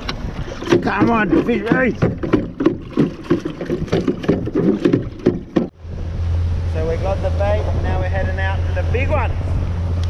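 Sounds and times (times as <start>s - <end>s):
sharp knocks: 0.6s - 5.8s
steady low rumble: 5.7s - 10.0s.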